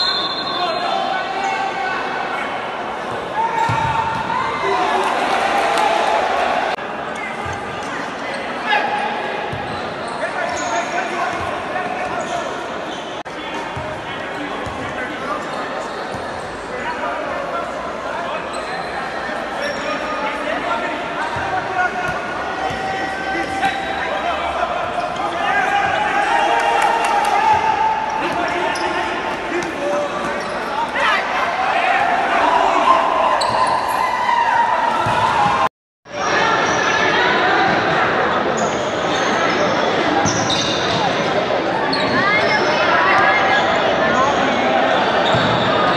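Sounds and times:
ball kicked and bouncing on court: 0:03.6 - 0:04.3, 0:35.0 - 0:35.6.

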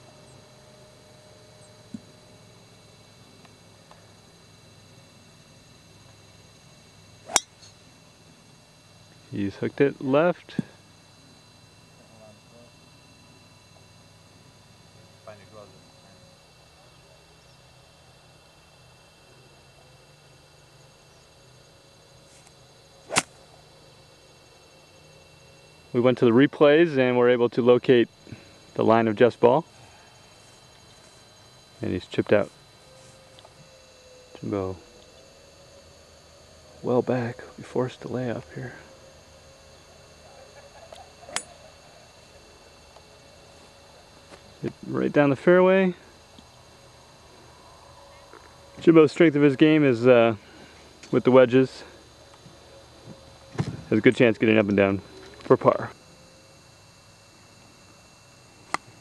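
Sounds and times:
faint steady background hum: 0:00.0 - 0:59.0
golf club striking ball: 0:07.3 - 0:07.7, 0:23.1 - 0:23.4.

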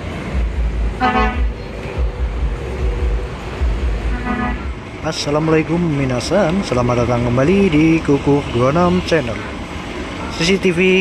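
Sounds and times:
trucks passing on road: 0:00.0 - 0:11.0
vehicle horn toot: 0:01.0 - 0:01.5, 0:04.1 - 0:04.8.

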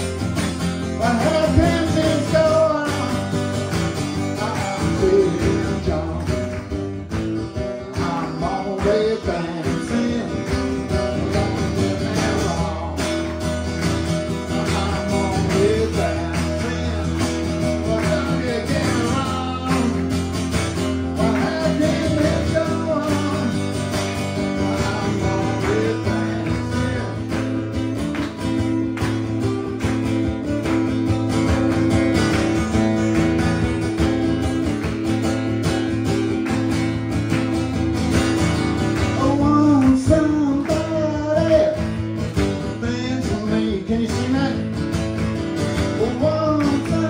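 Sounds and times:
acoustic guitar strummed: 0:00.0 - 0:47.0
man singing into microphone: 0:00.9 - 0:03.5, 0:04.2 - 0:06.5, 0:07.8 - 0:13.3, 0:14.3 - 0:20.3, 0:21.0 - 0:23.8, 0:24.4 - 0:27.6, 0:39.1 - 0:41.9, 0:42.6 - 0:44.8, 0:46.0 - 0:47.0.

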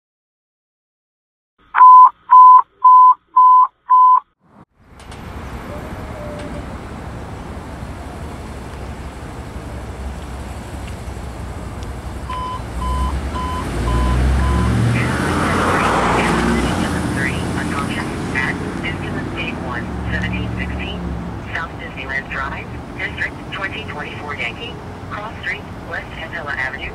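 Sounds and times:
electronic alert beeps: 0:01.8 - 0:04.2, 0:12.3 - 0:17.0
ambulance engine pulling away: 0:04.8 - 0:26.9.

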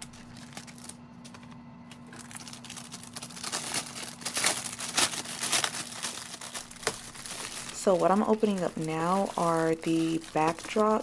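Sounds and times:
plastic wrapping crinkling: 0:00.0 - 0:11.0
steady low hum: 0:00.0 - 0:11.0.

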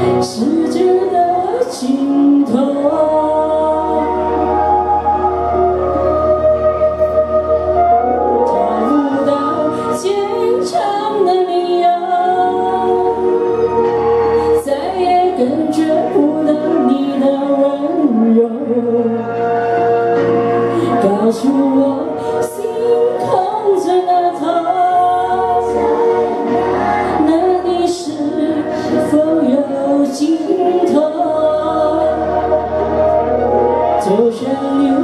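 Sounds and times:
backing music: 0:00.0 - 0:35.0
woman singing pop ballad: 0:00.0 - 0:35.0.

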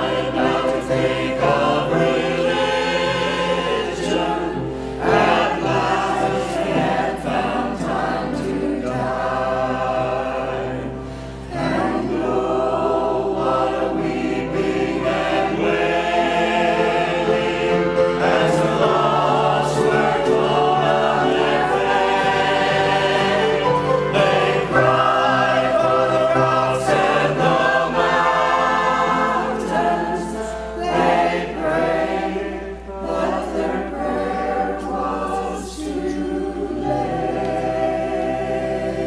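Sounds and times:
mixed choir singing: 0:00.0 - 0:39.0.

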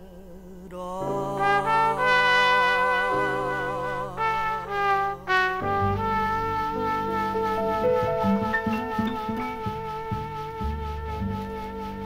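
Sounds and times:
piano accompaniment: 0:01.0 - 0:12.0
jazz trumpet with vibrato: 0:01.2 - 0:12.0
double bass: 0:01.4 - 0:12.0.

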